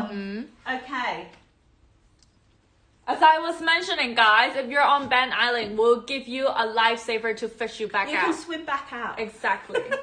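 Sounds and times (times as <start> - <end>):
woman speaking: 0.0 - 1.4, 3.1 - 10.0.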